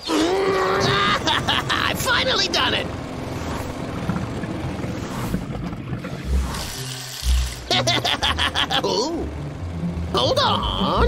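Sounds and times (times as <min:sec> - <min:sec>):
man laughing: 0:00.7 - 0:02.1, 0:07.7 - 0:09.3
cartoon background music: 0:06.2 - 0:11.0.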